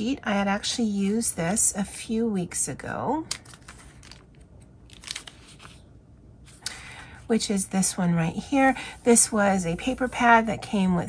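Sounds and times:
paper pages turning: 3.3 - 6.6.

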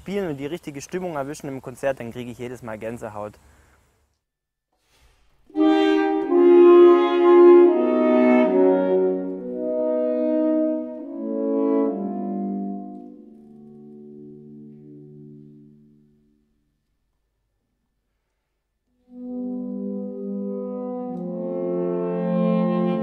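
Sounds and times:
low held note: 5.5 - 16.8
saxophone quartet sustained chords: 5.5 - 16.9, 18.9 - 23.0.

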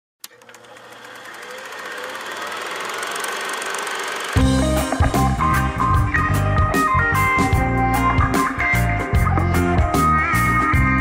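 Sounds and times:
click: 0.2 - 0.7
rapid mechanical rattle: 0.3 - 4.5.

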